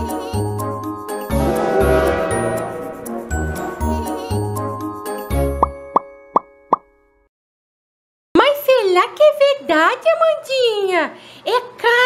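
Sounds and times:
children's jingle with deep bass: 1.2s - 5.0s.

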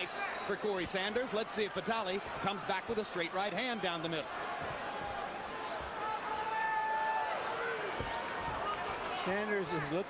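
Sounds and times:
arena crowd noise: 0.0s - 10.0s.

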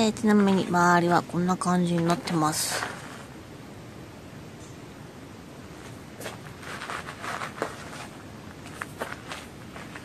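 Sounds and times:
crunching footsteps: 1.8s - 3.3s, 5.8s - 10.0s.

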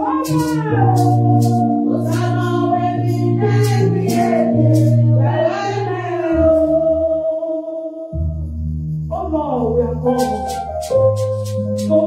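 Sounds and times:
woman singing into a microphone: 0.0s - 7.9s.

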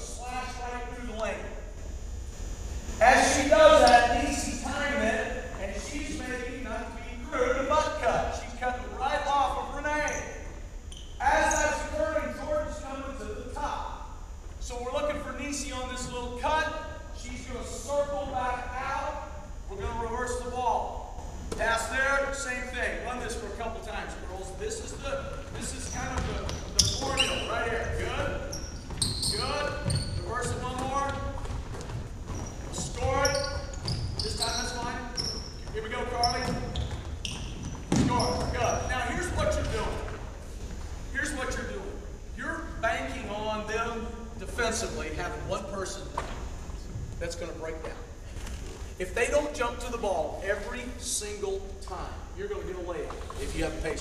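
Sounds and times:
person talking in echoing gym: 0.0s - 31.4s, 32.5s - 36.8s, 37.9s - 54.0s
indistinct echoing voices: 2.6s - 10.5s
sneaker squeaks: 9.4s - 12.1s, 24.7s - 41.2s
basketball bouncing on hardwood: 25.3s - 27.1s, 28.0s - 38.6s.

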